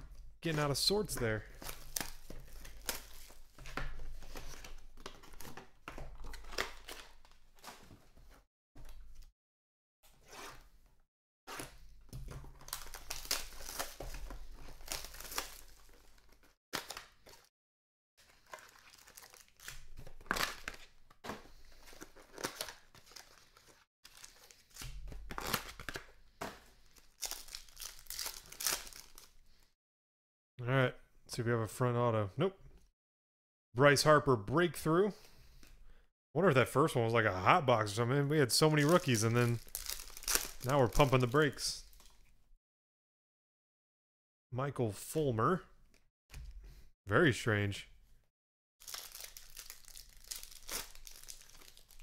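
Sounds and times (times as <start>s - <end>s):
foil wrappers tearing and crinkling: 1.5s - 3.6s, 12.5s - 17.5s, 18.3s - 20.9s, 21.7s - 26.2s, 26.8s - 29.4s, 38.8s - 41.3s, 48.8s - 52.0s.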